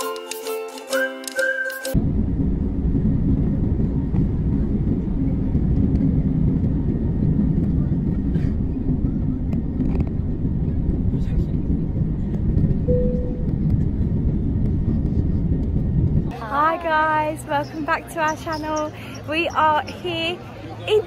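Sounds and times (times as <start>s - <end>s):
jet engines rumbling in cabin: 1.9s - 20.7s.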